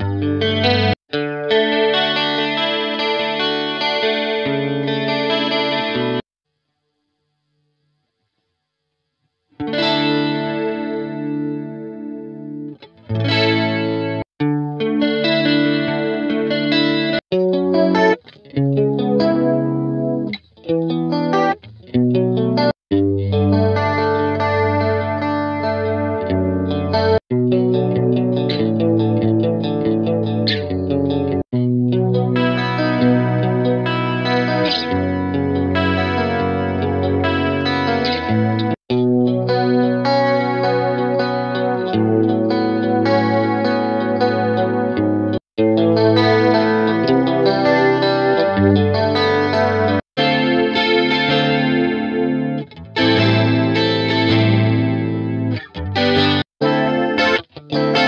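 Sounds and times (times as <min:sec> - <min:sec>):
guitar chord loops with effects: 0:00.0 - 0:06.2, 0:09.5 - 0:58.0.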